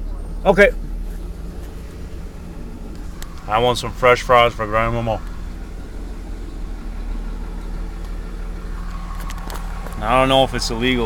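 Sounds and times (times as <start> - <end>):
car engine humming at low revs: 0.0 - 11.0.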